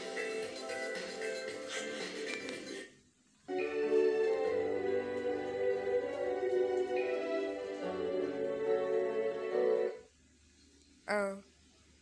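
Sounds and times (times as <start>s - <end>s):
film intro music from tv speakers: 0.0s - 10.2s.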